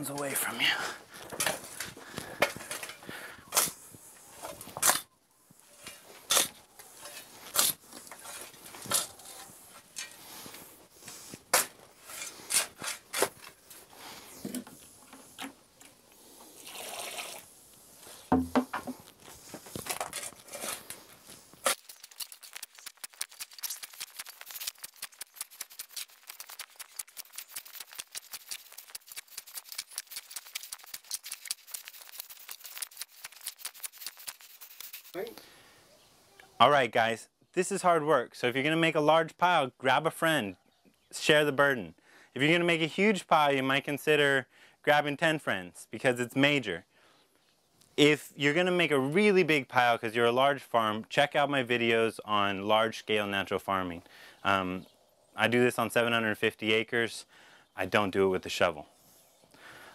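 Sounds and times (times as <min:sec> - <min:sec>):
spade scraping into soil: 0:05.7 - 0:10.3, 0:11.0 - 0:13.6, 0:19.4 - 0:22.0.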